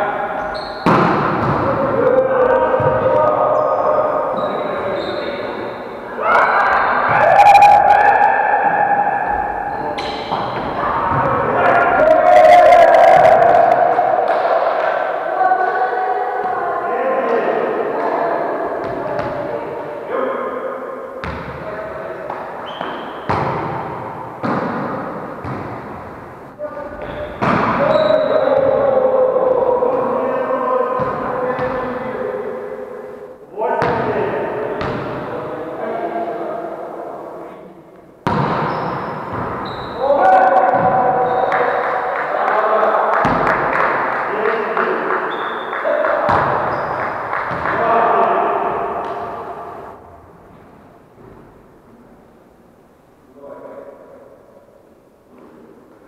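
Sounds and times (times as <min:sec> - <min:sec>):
players' voices: 0:00.0 - 0:50.2
volleyball hits and bounces: 0:00.8 - 0:01.8, 0:10.0 - 0:11.5, 0:22.3 - 0:26.0, 0:27.0 - 0:28.8, 0:38.2 - 0:39.7, 0:40.6 - 0:41.3, 0:43.2 - 0:44.0, 0:46.2 - 0:47.9.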